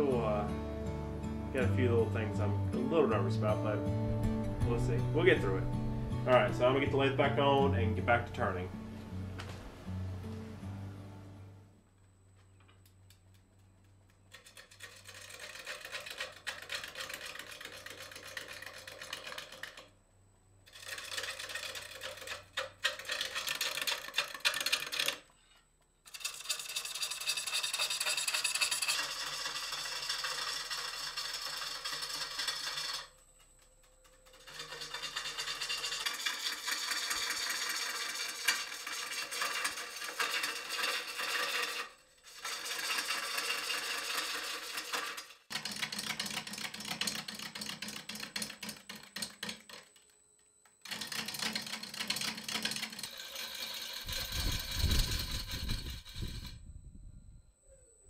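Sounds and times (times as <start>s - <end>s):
gouge cutting wood on lathe: 14.3s - 19.9s, 20.7s - 25.3s, 26.1s - 33.2s, 34.3s - 49.8s, 50.8s - 56.5s.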